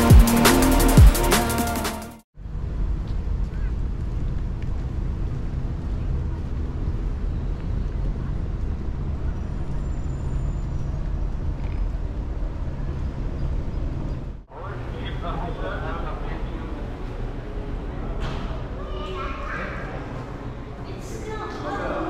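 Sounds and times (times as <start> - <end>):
traffic rumble: 2.4 - 22.0.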